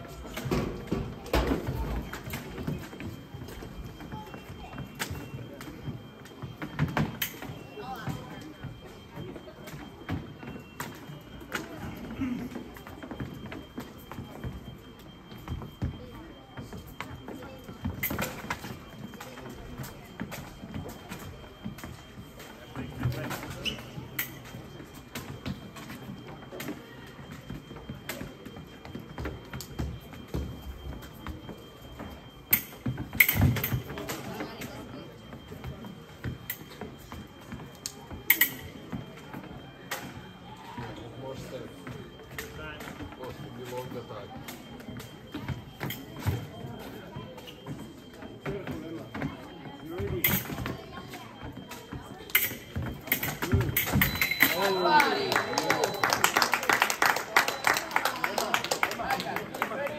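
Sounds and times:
murmur of a hall: 0:00.0 - 0:59.9.

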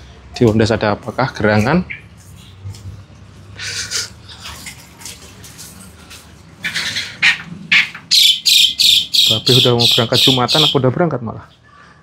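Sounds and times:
animals making harsh calls: 0:06.5 - 0:10.9.

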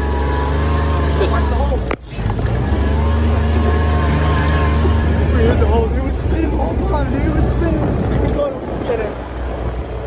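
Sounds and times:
diesel engine droning: 0:00.0 - 0:10.0
wheels spinning in sand: 0:00.0 - 0:10.0.

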